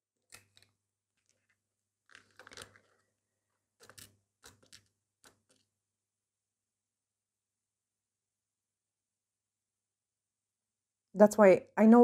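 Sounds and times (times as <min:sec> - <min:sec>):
light clicks and taps of crystals: 0:00.2 - 0:05.7.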